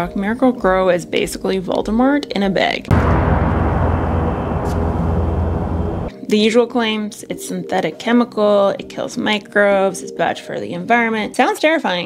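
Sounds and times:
deep rumbling drone: 0:02.9 - 0:06.1.

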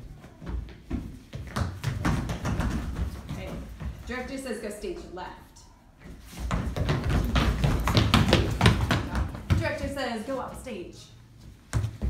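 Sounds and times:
children running on hard floor: 0:00.0 - 0:04.2, 0:06.0 - 0:10.6.

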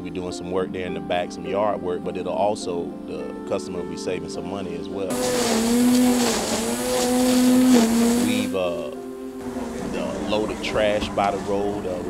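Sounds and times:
electric string trimmer motor whine: 0:05.1 - 0:12.0
trimmer line cutting grass: 0:05.1 - 0:12.0.

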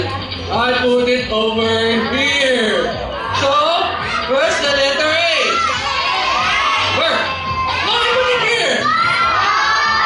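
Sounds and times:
children shouting: 0:05.3 - 0:10.0.

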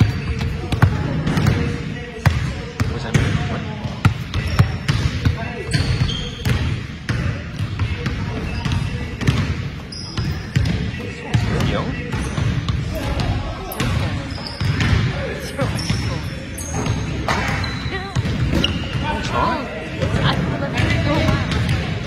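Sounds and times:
sneaker squeaks: 0:02.8 - 0:21.8.

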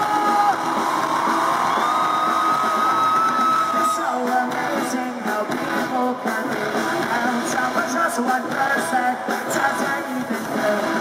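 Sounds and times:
crowd noise: 0:00.0 - 0:11.0
pop-punk band playing live: 0:00.0 - 0:11.0.

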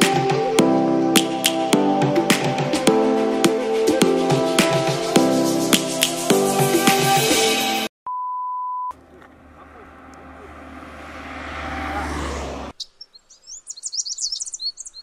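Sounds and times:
music: 0:00.0 - 0:07.9
steady beep: 0:08.1 - 0:08.9
car approaching with low rumble: 0:08.9 - 0:12.7
high bird chirps: 0:12.8 - 0:15.0.

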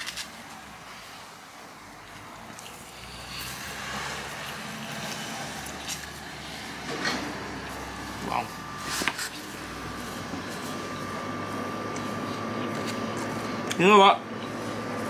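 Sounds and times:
vehicle engine running: 0:02.7 - 0:15.0.

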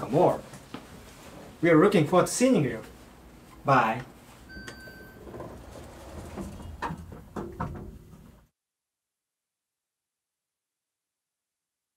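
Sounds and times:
door swinging shut: 0:04.6 - 0:08.4.

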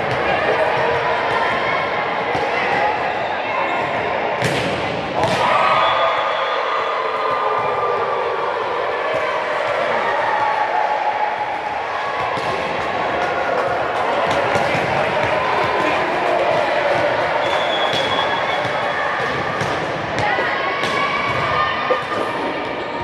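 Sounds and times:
hubbub of voices: 0:00.0 - 0:23.0
balls bouncing on court floor: 0:04.4 - 0:05.5, 0:12.2 - 0:23.0.

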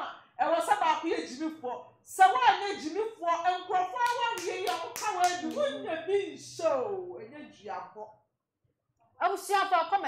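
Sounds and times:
woman talking: 0:00.0 - 0:08.2, 0:09.2 - 0:10.0
hand claps: 0:04.0 - 0:05.8.

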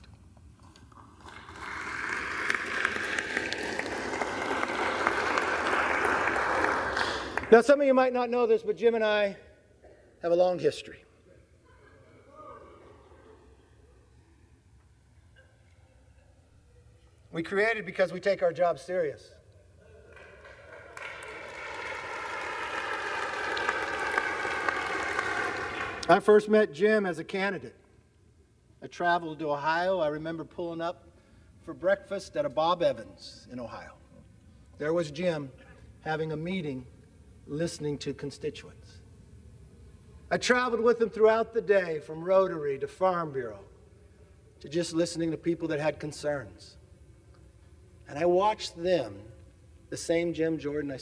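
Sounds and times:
many hands clapping: 0:00.6 - 0:07.7, 0:20.0 - 0:26.2
audience applause: 0:00.9 - 0:07.5, 0:20.1 - 0:26.1.

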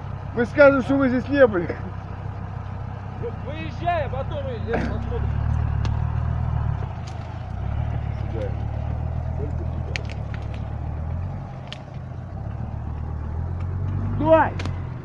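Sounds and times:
vehicle engine under load: 0:00.0 - 0:15.0.

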